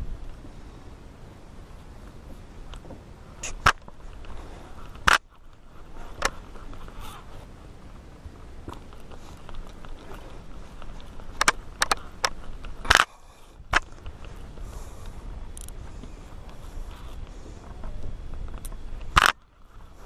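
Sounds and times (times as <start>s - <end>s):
fishing reel clicks and knocks: 15.5s - 15.8s.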